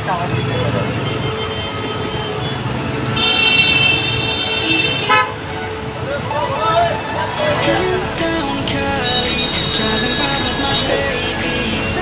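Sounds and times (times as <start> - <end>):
street traffic: 0.0 - 12.0
vehicle horn: 0.3 - 5.6, 9.0 - 12.0.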